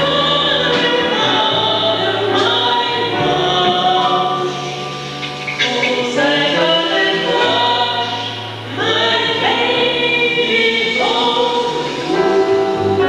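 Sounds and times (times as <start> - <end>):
double bass notes: 0.0 - 13.0
women singing in harmony: 0.0 - 13.0.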